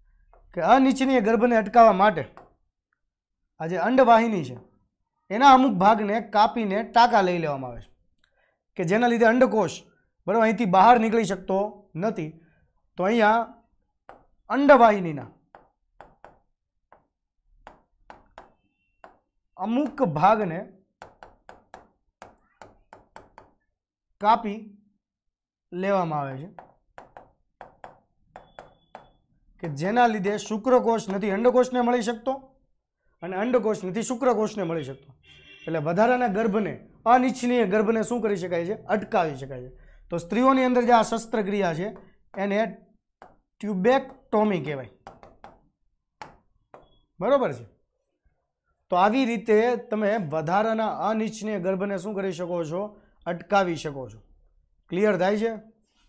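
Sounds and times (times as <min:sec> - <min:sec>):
chalk tapping on chalkboard: 0:14.1 - 0:14.4, 0:15.5 - 0:20.1, 0:21.0 - 0:23.7, 0:26.6 - 0:29.2, 0:45.0 - 0:47.0.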